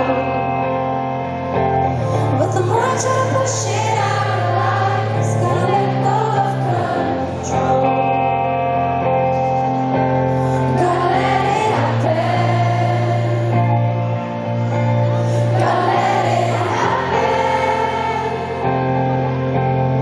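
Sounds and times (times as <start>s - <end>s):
arena crowd singing along: 0.0s - 10.0s, 10.6s - 20.0s
woman singing lead: 1.9s - 8.7s, 10.5s - 19.0s.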